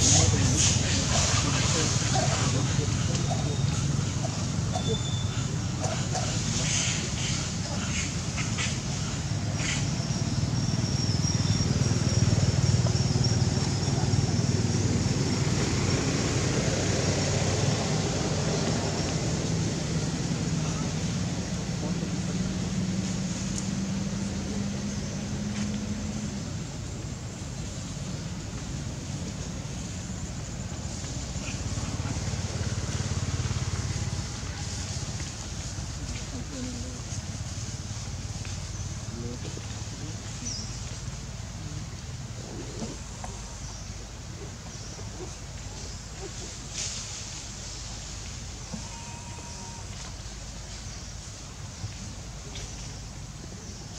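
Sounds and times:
vehicle engine rumble: 0:00.0 - 0:53.9.

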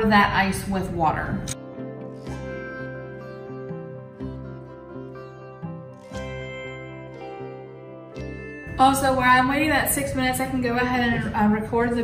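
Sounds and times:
instrumental background music: 0:00.6 - 0:12.0.

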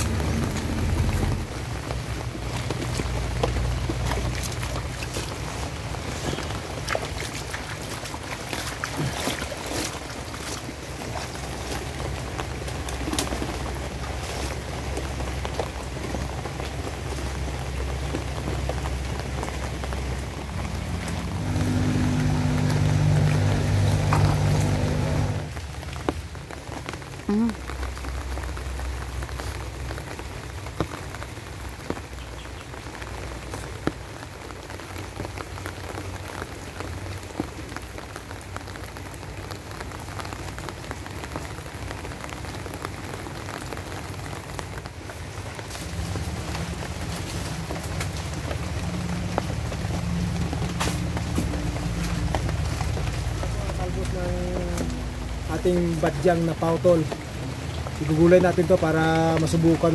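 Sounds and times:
rain falling on leaves: 0:00.0 - 0:59.9
raindrops ticking: 0:00.0 - 0:59.9
low drone with steady tones: 0:19.4 - 0:25.6.

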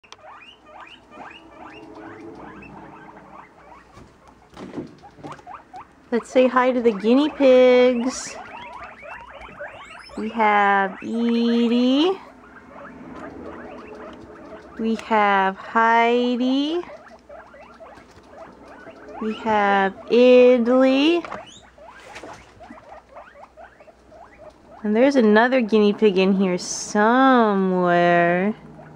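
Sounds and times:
guinea pigs squealing: 0:00.0 - 0:28.9.

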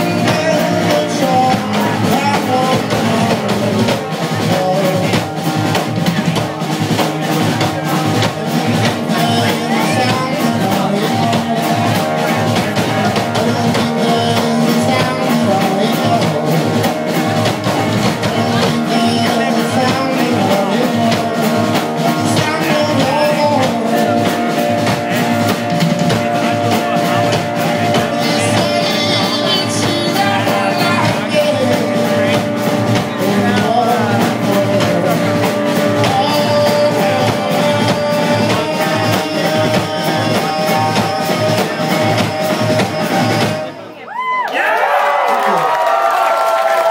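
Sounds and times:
electric guitars: 0:00.0 - 0:44.0
live rock band playing: 0:00.0 - 0:44.4.

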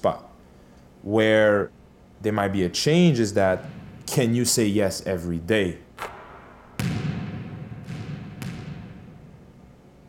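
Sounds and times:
basketball bouncing on gym floor: 0:03.5 - 0:04.2, 0:06.0 - 0:09.6.

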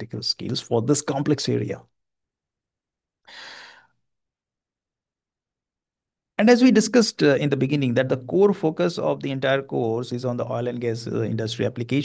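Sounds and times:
man breathing: 0:03.2 - 0:04.0.

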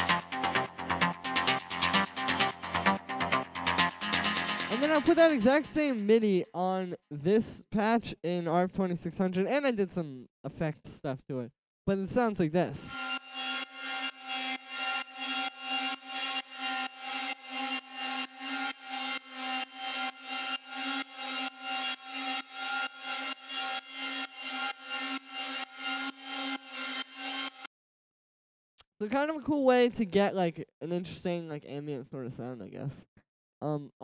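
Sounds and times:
synthesizer arpeggio: 0:00.0 - 0:06.0.

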